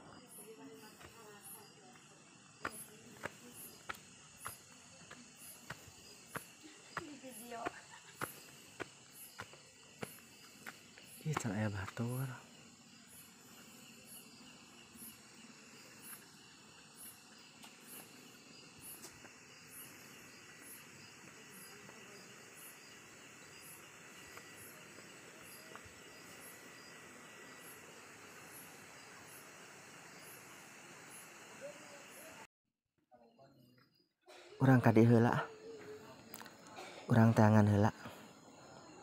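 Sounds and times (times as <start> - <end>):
crickets chirping: 0.0 - 32.5, 33.2 - 39.0.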